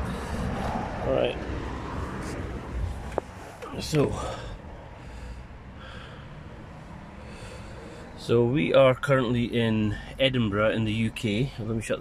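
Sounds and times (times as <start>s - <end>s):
man breathing: 0.0s - 1.0s, 4.2s - 8.2s.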